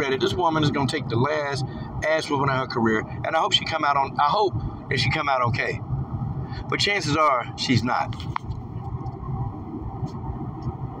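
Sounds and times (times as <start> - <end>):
low steady rumbling: 0.0 - 11.0.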